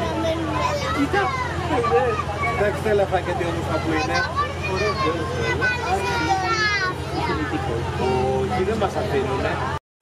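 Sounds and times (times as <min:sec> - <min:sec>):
people talking at once: 0:00.0 - 0:09.8
train engine hum: 0:00.0 - 0:09.8.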